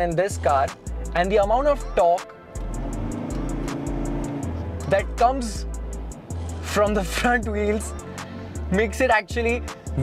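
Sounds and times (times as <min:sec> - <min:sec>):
music with ticking beat and bass: 0:00.0 - 0:10.0
diesel engine drone in cabin: 0:02.6 - 0:06.7.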